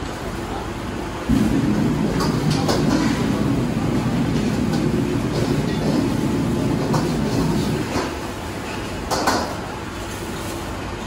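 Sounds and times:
gas burner rumbling: 0.0s - 11.0s.

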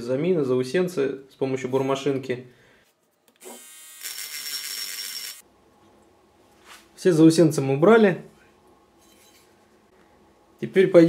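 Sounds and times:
rotary mini-drill grinding steel: 3.4s - 5.4s.

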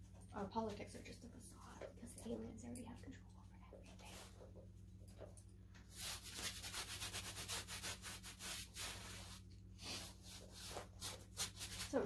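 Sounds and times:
paintbrush scrubbing on canvas: 5.9s - 12.0s.

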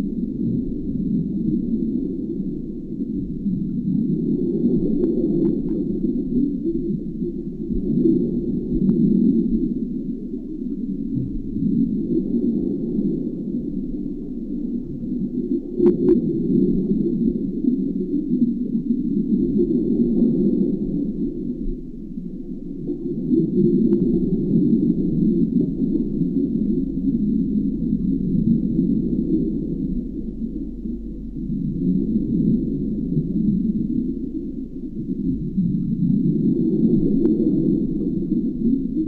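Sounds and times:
faint high whine: 0.0s - 39.0s
low underwater rumble: 0.0s - 39.0s.

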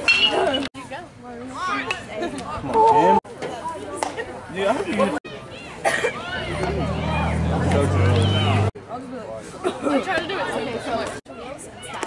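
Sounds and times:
people chatting: 0.2s - 12.0s.

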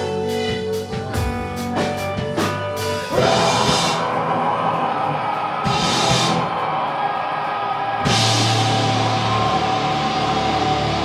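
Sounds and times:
rock band playing distorted noise: 0.0s - 11.0s.

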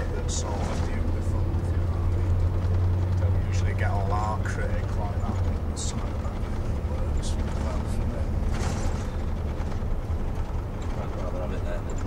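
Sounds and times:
bus engine and road drone: 0.0s - 12.0s.

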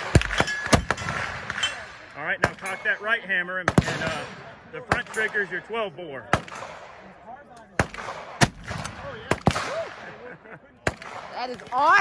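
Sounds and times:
loud gunshot: 0.0s - 2.7s, 6.3s - 7.1s, 7.8s - 10.2s, 10.8s - 11.3s
sharp gunshots: 0.0s - 5.6s, 6.2s - 11.5s.

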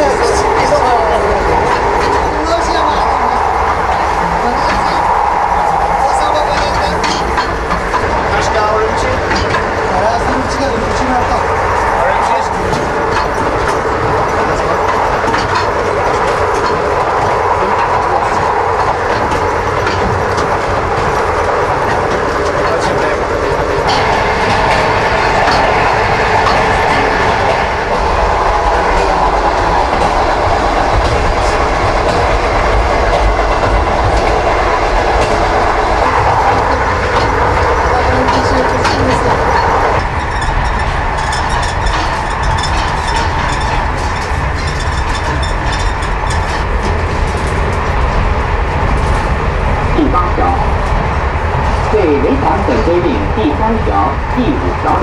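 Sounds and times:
train rumbling on rails: 0.0s - 55.0s
wheels clickety-clack: 0.0s - 55.0s.

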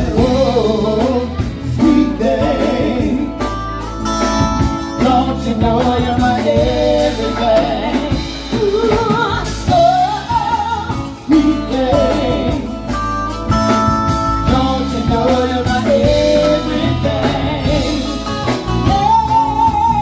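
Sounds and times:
woman singing with vibrato: 0.0s - 3.4s, 4.9s - 13.2s, 14.1s - 20.0s
drum kit: 0.0s - 20.0s
electric bass: 0.0s - 20.0s
electric guitar: 0.0s - 20.0s.

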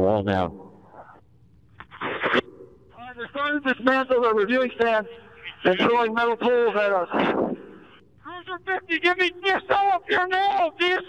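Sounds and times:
police radio static: 5.4s - 7.6s.

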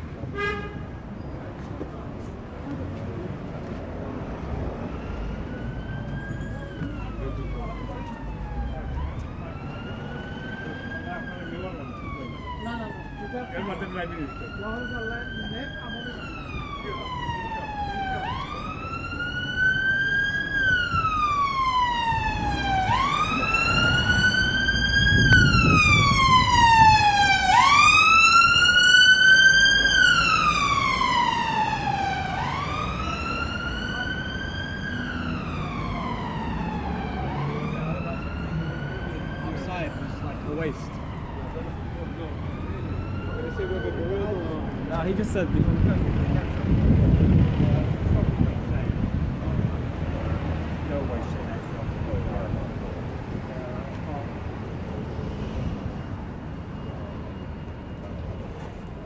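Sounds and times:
street traffic noise: 0.0s - 59.0s
emergency siren wailing: 3.7s - 59.0s.

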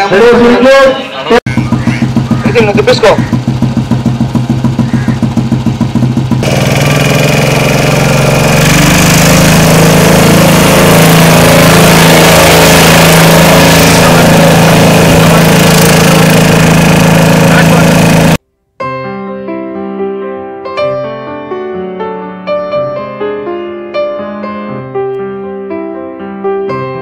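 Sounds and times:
loud noise with low hum: 1.4s - 18.4s
motorcycle engine idling: 1.5s - 11.6s, 13.1s - 18.4s.

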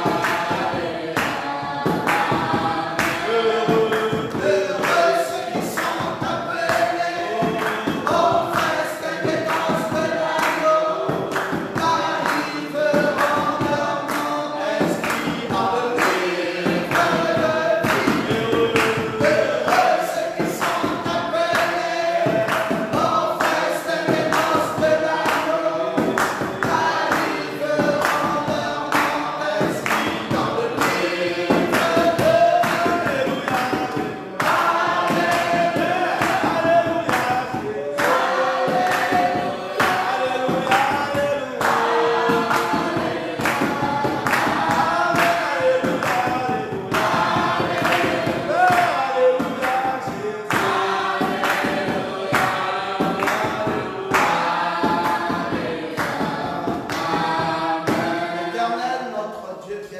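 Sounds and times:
sharp percussion beat: 0.0s - 58.8s
choir singing gospel song: 0.0s - 59.3s.

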